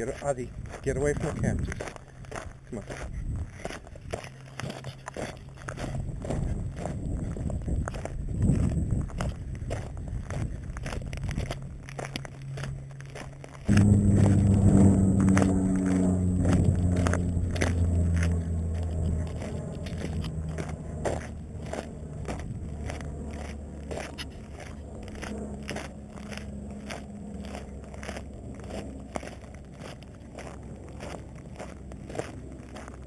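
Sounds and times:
footsteps crunching on gravel: 0:00.0 - 0:33.0
loud low droning hum: 0:00.0 - 0:33.0.

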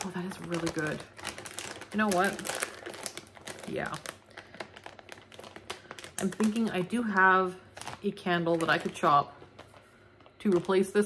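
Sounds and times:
packaging crinkling: 0:00.0 - 0:11.0.

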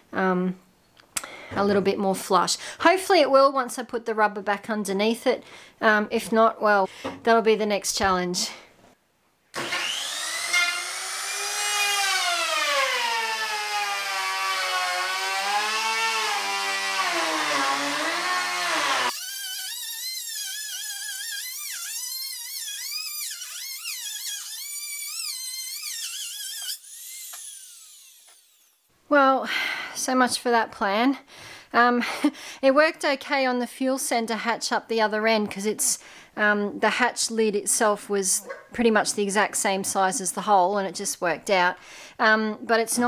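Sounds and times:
router cutting plywood: 0:09.6 - 0:28.8
router motor whining: 0:09.6 - 0:28.9.

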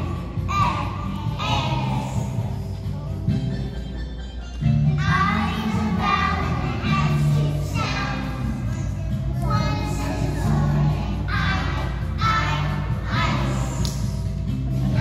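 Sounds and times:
young children singing: 0:00.0 - 0:02.8, 0:05.0 - 0:15.0
accompanying music with bass: 0:00.0 - 0:15.0.

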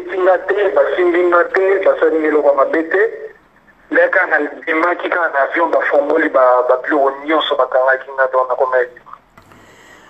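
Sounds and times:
person talking through phone speaker: 0:00.0 - 0:09.0.

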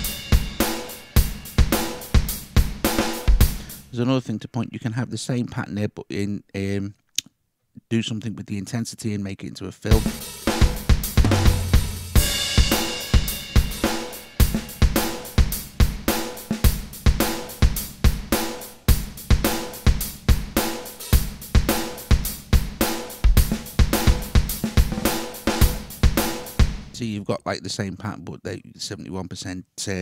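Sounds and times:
cymbal crash: 0:00.0 - 0:02.1, 0:11.4 - 0:15.2
rock drum machine pattern: 0:00.0 - 0:04.0, 0:09.9 - 0:27.0.

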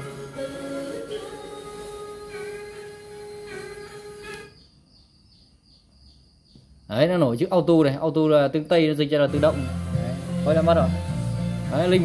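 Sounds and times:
radio music with singing: 0:00.0 - 0:04.4.

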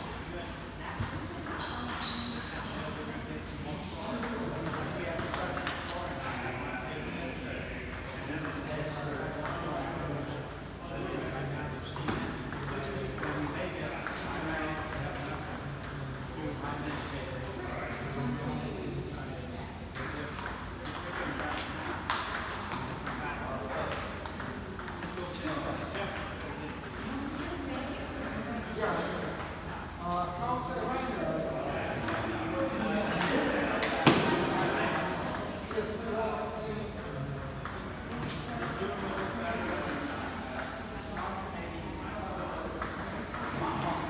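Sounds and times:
people talking: 0:00.0 - 0:44.0.

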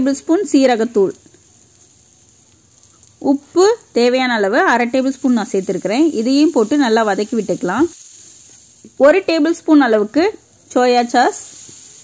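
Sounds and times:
vegetables sizzling in oil: 0:00.0 - 0:12.0.

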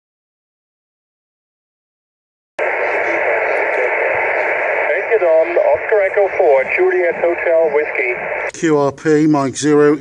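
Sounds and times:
radio static hiss: 0:02.6 - 0:10.0.

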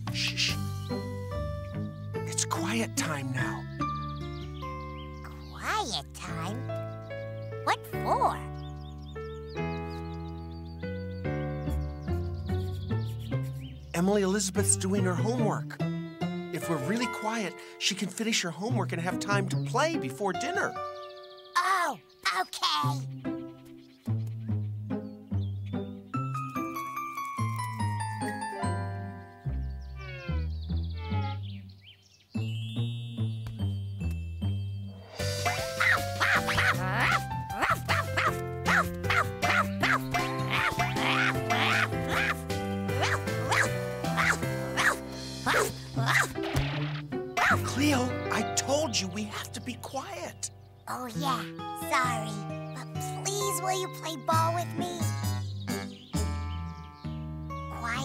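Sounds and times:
light melody over low notes: 0:00.0 - 0:22.2, 0:23.0 - 0:46.0, 0:46.7 - 0:58.0
bouncy cartoon music: 0:00.0 - 0:31.7, 0:32.3 - 0:58.0.

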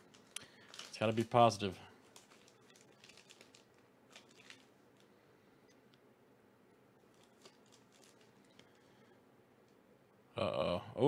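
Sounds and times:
foil pouch crinkling: 0:00.0 - 0:05.2, 0:07.0 - 0:09.2.

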